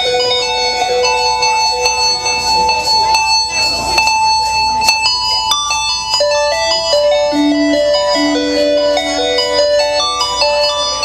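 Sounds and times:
bell-like keyboard tones: 0:00.0 - 0:11.0.

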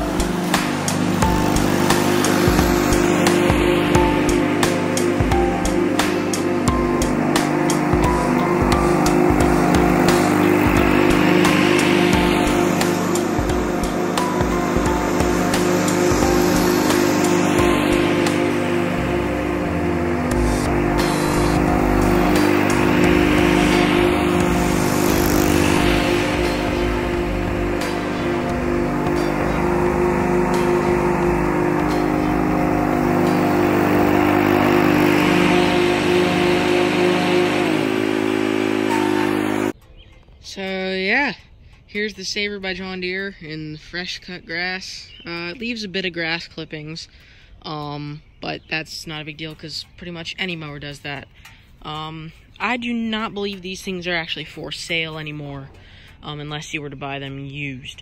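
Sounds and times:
background music: 0:00.0 - 0:41.4
lawn tractor engine mowing: 0:00.0 - 0:47.0, 0:47.7 - 0:57.6.

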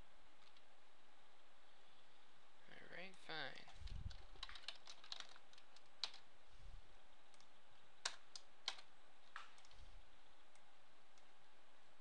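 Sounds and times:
computer keyboard keystrokes: 0:03.8 - 0:06.2, 0:07.3 - 0:09.8.

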